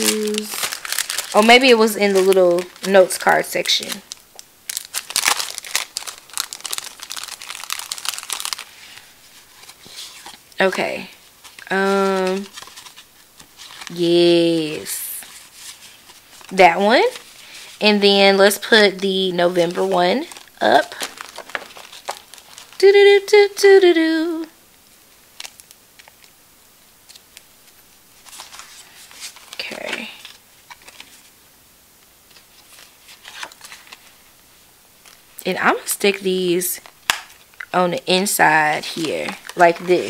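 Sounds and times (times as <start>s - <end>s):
plastic packaging crinkling: 0.0s - 23.1s, 25.2s - 26.4s, 27.0s - 31.3s, 32.3s - 34.3s, 35.0s - 40.0s.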